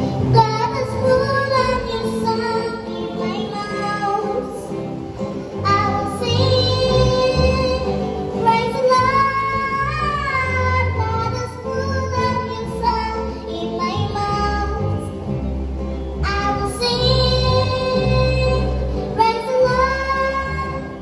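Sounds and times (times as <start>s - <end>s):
girl singing into microphone: 0.0s - 4.8s, 5.5s - 15.2s, 16.2s - 21.0s
instrumental accompaniment: 0.0s - 21.0s.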